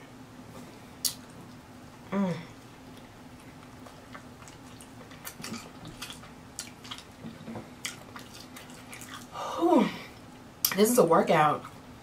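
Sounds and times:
close-miked chewing: 2.9 - 9.4.

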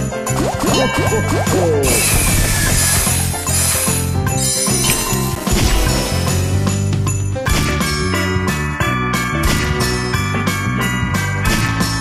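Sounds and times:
festive background music: 0.0 - 12.0
slot machine rising pitch sweeps: 0.3 - 6.7.

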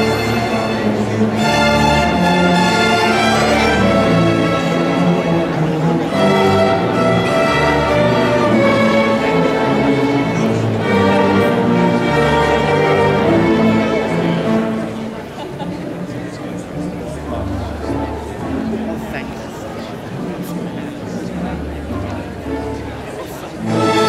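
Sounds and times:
string orchestra playing: 0.0 - 24.0.

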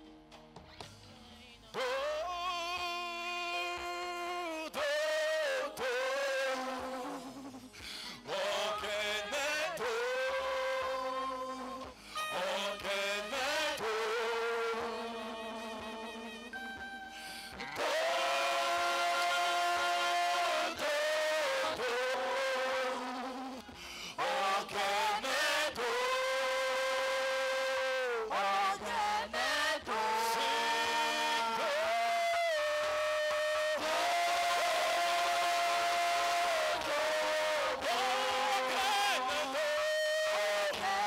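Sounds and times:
band accompaniment: 0.0 - 22.2
person singing into microphone: 1.1 - 41.0
instrumental backing: 11.0 - 21.0.

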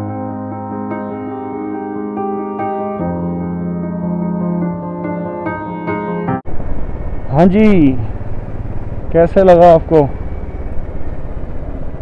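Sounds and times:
motorcycle engine rumbling: 6.4 - 12.0
road noise: 6.4 - 12.0
wind: 6.4 - 12.0.

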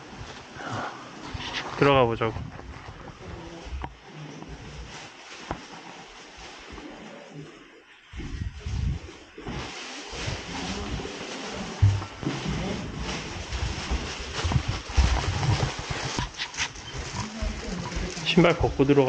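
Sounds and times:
plastic bag rustling: 0.0 - 19.0
handling knocks: 11.8 - 12.5.

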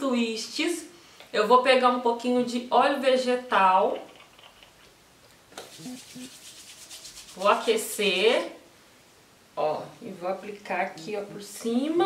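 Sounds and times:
oily palms rubbing together: 5.5 - 8.2.

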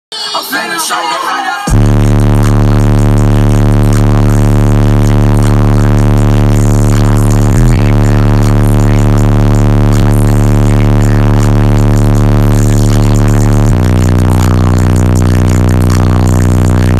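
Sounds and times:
subwoofer bass tone drone: 1.7 - 16.9.

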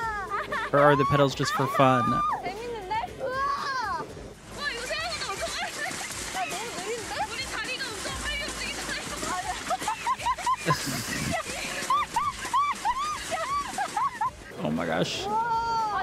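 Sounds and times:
high-pitched laughter: 0.0 - 1.2, 9.6 - 14.4
light background music: 0.0 - 16.0
women talking excitedly: 0.9 - 3.7, 4.5 - 10.5.

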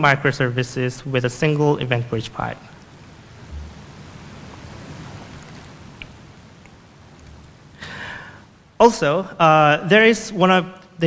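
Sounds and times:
even hiss: 0.0 - 10.8
low rumble: 3.3 - 4.4.

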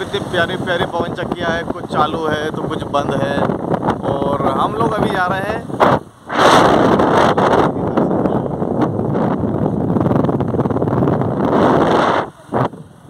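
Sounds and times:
wind roaring over microphone: 0.0 - 13.0.

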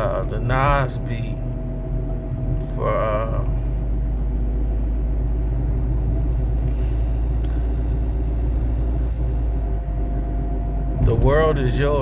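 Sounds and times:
car engine idling: 0.0 - 12.0
faint steady hum: 0.0 - 12.0.

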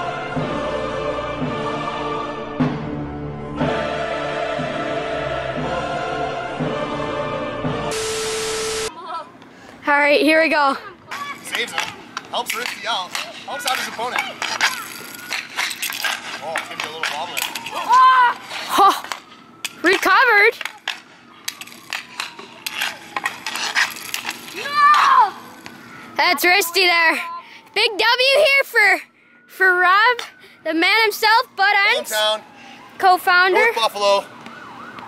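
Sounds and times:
steady hum tone: 5.2 - 9.7
static hiss: 7.9 - 8.9
hockey sticks clacking on puck: 11.1 - 25.8
person shouting: 17.8 - 18.4.

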